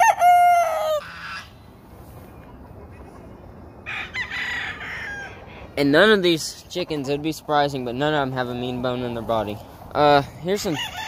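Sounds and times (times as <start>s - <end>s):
roosters crowing: 0.0s - 1.7s, 3.7s - 6.0s, 10.3s - 11.0s.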